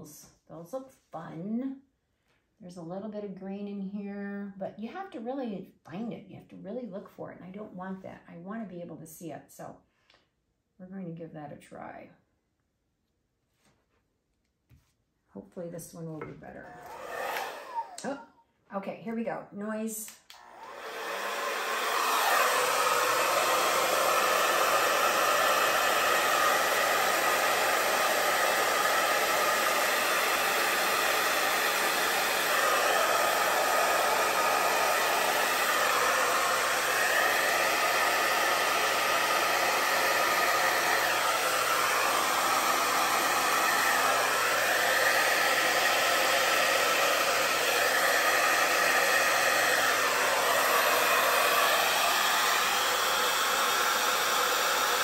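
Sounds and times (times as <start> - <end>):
hair dryer blowing: 16.0 - 18.2, 19.7 - 55.0.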